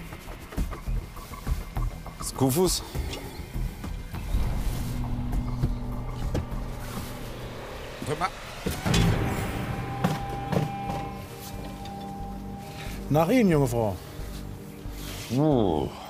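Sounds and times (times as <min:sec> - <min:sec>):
background music drone: 0:00.0 - 0:16.0.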